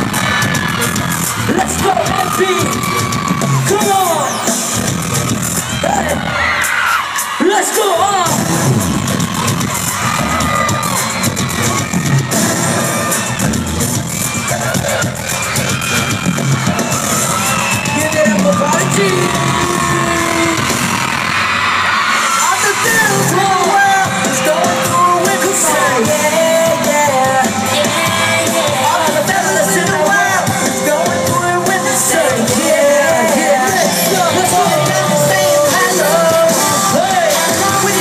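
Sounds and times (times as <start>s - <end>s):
crowd screaming and cheering: 0.0s - 38.0s
pop dance music over speakers: 0.0s - 38.0s.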